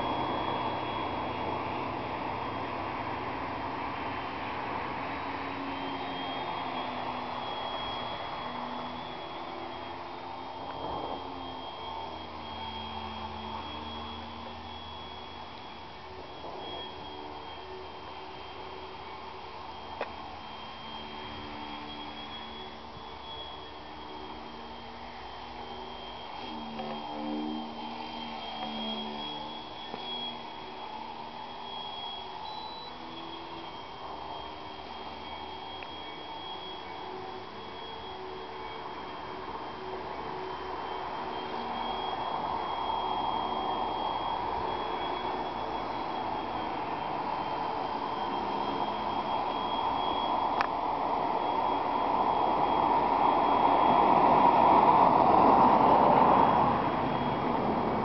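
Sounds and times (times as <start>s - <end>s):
model plane motor whine: 0.0s - 58.0s
propeller rushing noise: 0.0s - 58.0s.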